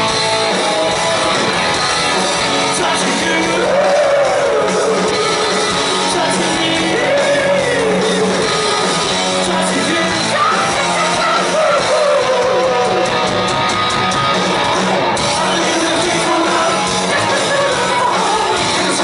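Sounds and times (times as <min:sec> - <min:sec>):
distorted electric guitars: 0:00.0 - 0:19.0
drums: 0:00.0 - 0:19.0
person singing: 0:02.7 - 0:13.1, 0:15.3 - 0:19.0.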